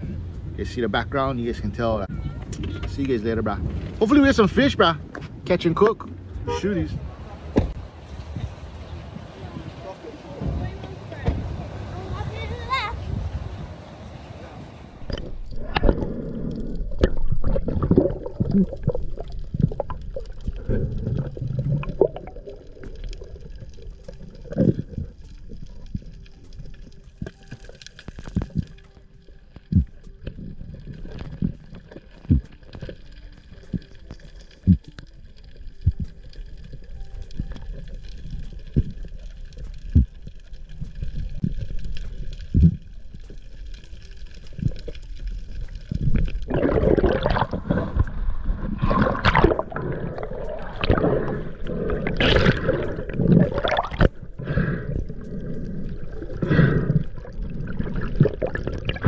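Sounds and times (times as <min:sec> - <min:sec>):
low underwater rumble: 0:13.0 - 0:59.0
bubbling and splashing water: 0:15.0 - 0:59.0
underwater knocks and clicks: 0:15.1 - 0:28.8, 0:29.5 - 0:43.4, 0:44.0 - 0:54.2.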